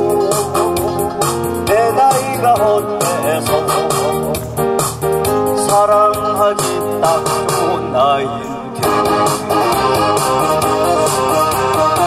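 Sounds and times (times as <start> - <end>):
man singing into a microphone: 0.0 - 4.5, 5.3 - 9.7
backing track with keyboard and beat: 0.0 - 12.0.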